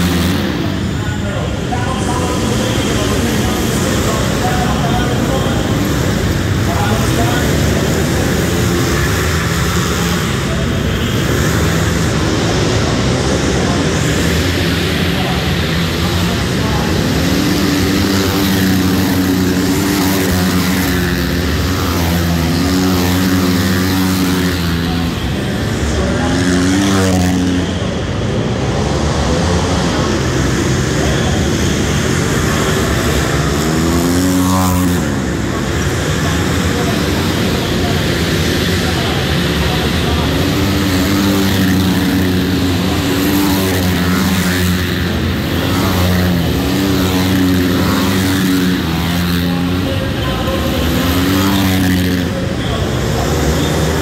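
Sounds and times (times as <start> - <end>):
motorcycle engines revving: 0.0 - 54.0
motorcycles passing by: 0.0 - 54.0.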